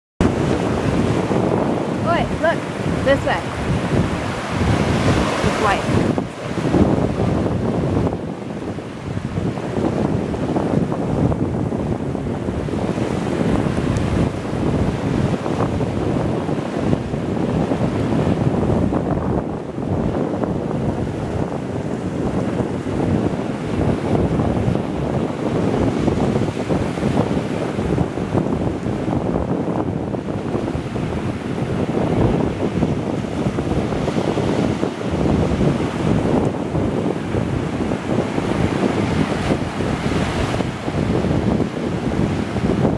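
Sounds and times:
small waves breaking on sand: 0:00.2 - 0:42.9
wind buffeting microphone: 0:00.2 - 0:42.9.

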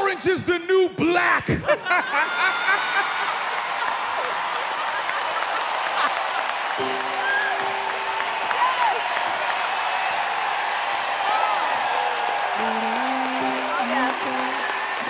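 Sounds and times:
audience applauding: 0:01.8 - 0:15.0.

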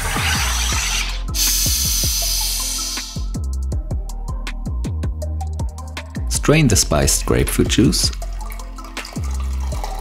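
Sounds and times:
gas hissing into water: 0:00.0 - 0:03.4
background music with steady beat: 0:00.0 - 0:10.0.

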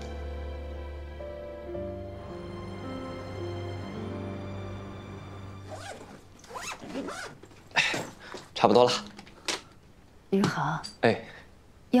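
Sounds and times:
bag zipper being drawn: 0:05.6 - 0:07.5.

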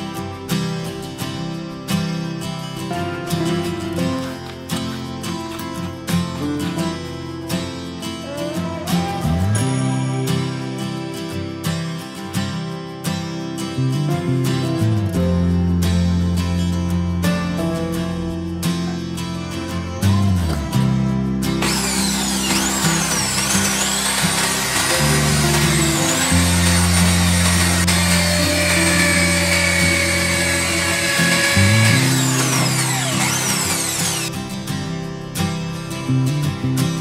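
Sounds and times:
acoustic guitar music: 0:00.0 - 0:37.0
electric drill boring into metal: 0:21.6 - 0:34.3.

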